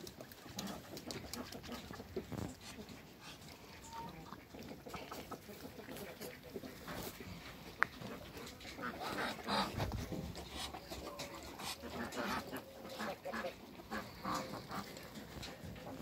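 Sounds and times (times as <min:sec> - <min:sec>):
chickens clucking: 0:00.0 - 0:16.0.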